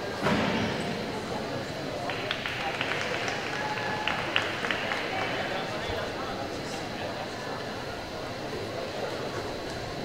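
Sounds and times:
indistinct voices murmuring: 0:00.0 - 0:10.0.

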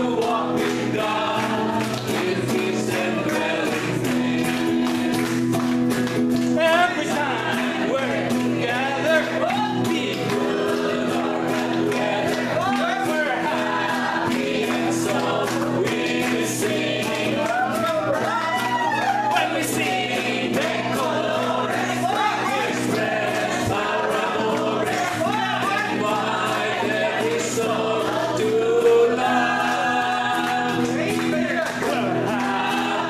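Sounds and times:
group of people singing: 0:00.0 - 0:33.0
hand clapping in time: 0:00.0 - 0:33.0.

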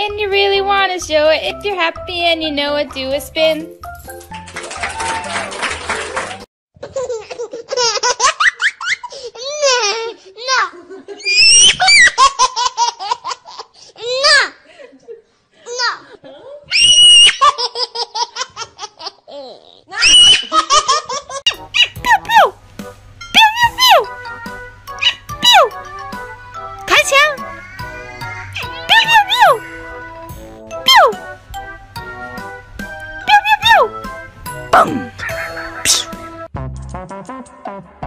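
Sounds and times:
background music: 0:00.0 - 0:06.4, 0:21.5 - 0:38.0
high-pitched giggling laughter: 0:17.2 - 0:22.0, 0:34.8 - 0:36.1
puppy yapping: 0:21.5 - 0:22.1, 0:25.0 - 0:25.6.

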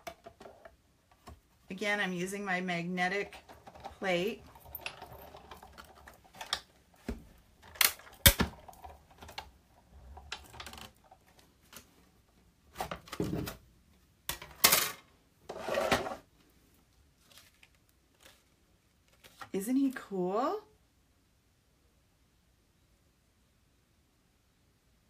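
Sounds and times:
plastic clacks and knocks: 0:00.0 - 0:01.4, 0:03.2 - 0:11.9.

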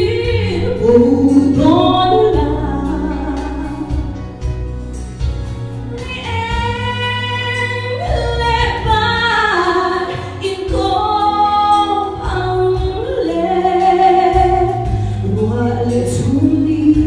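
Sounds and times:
woman singing gospel song: 0:00.0 - 0:04.4, 0:05.9 - 0:17.0
low sustained accompaniment: 0:00.0 - 0:06.0.

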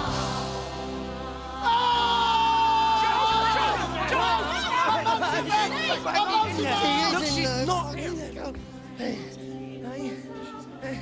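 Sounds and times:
musical accompaniment with bass: 0:00.0 - 0:11.0
voices singing together: 0:00.0 - 0:11.0.

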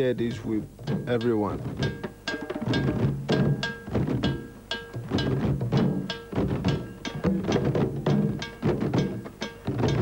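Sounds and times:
hand drums played in rhythm: 0:00.0 - 0:10.0.

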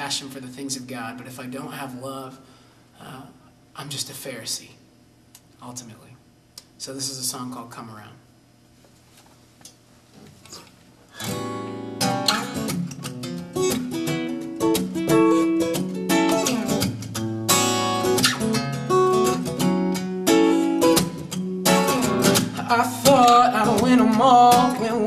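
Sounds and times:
acoustic guitar strumming chords: 0:11.1 - 0:25.0.

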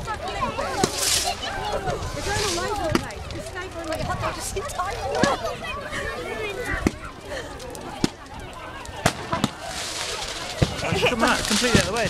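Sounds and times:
fireworks bangs: 0:00.0 - 0:05.5, 0:07.8 - 0:12.0
faint crowd voices: 0:00.0 - 0:12.0.

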